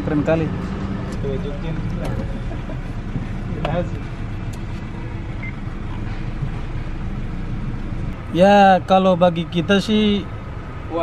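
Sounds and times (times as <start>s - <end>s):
traffic rumble inside car: 0.0s - 11.0s.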